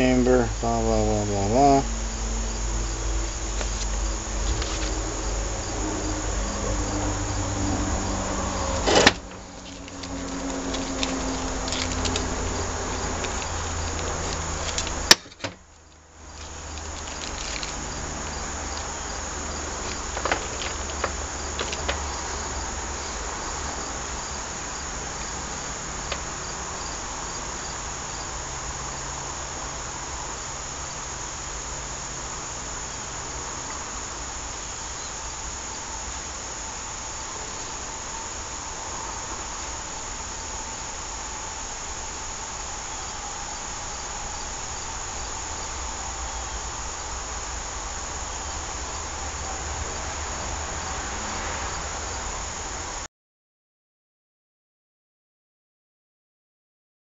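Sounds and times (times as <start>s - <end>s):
crickets trilling: 0.0s - 53.1s.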